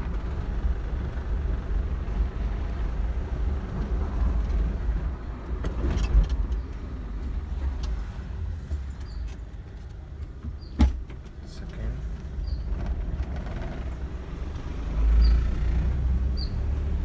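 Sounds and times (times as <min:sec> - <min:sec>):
car engine and tyres rumble: 0:00.0 - 0:17.0.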